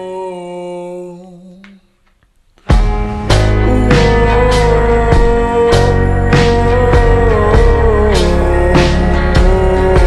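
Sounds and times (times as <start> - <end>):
slowed-down pop song: 2.6 - 10.0.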